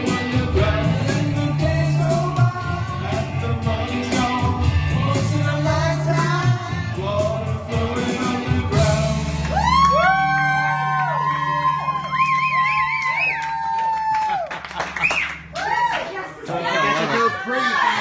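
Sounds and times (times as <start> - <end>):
pop-rock backing track: 0.0 - 13.8.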